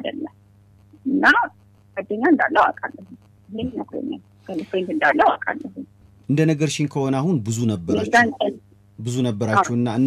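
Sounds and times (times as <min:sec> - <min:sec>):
low steady hum: 0:00.0 - 0:10.0
person talking on radio: 0:07.5 - 0:10.0.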